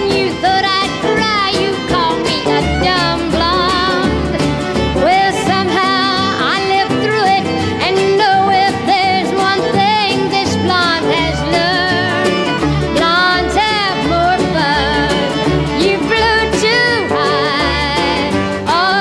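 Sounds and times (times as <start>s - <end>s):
country band playing: 0.0s - 19.0s
fiddle: 0.0s - 19.0s
guitar: 0.0s - 19.0s.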